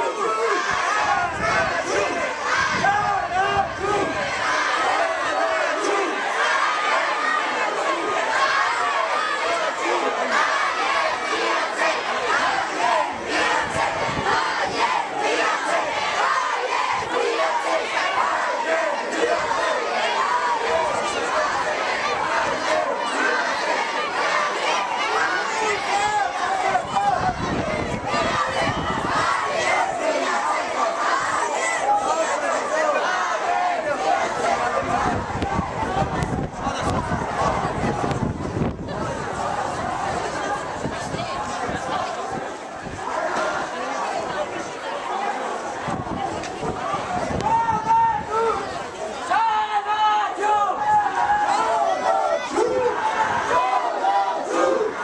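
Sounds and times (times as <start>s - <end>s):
crowd of voices din: 0.0s - 55.0s.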